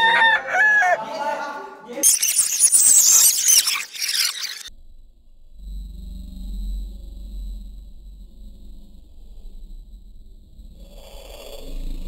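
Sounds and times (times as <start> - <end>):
high crowing calls: 0.0 - 1.4.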